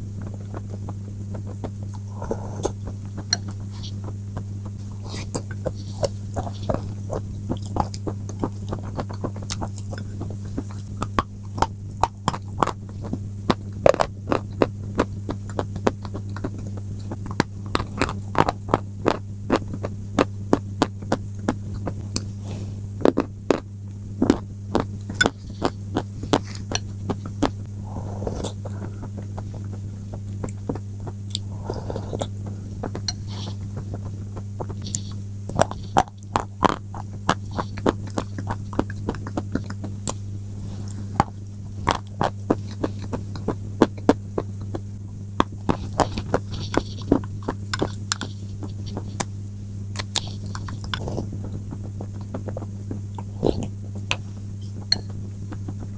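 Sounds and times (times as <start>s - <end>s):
crunchy food chewing: 0.0s - 55.9s
low electrical hum: 0.0s - 55.9s.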